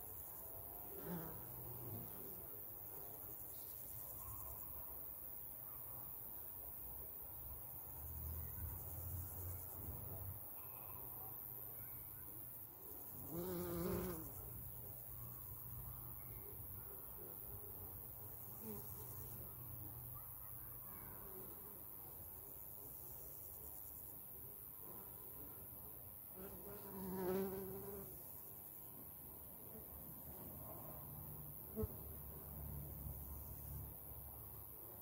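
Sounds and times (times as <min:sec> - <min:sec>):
bee buzzing: 0:13.3 - 0:14.4, 0:26.4 - 0:28.1.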